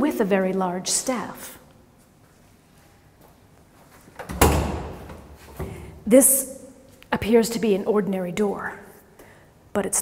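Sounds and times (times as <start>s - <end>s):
metal door thudding: 4.3s - 5.2s.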